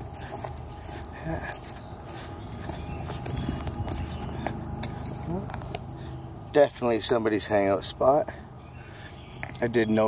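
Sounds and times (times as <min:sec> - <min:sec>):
footsteps on loose rock: 0:00.0 - 0:05.8.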